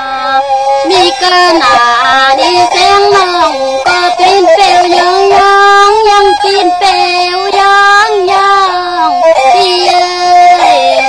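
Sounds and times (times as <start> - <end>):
high voice singing ornamented notes: 0.0 - 11.0.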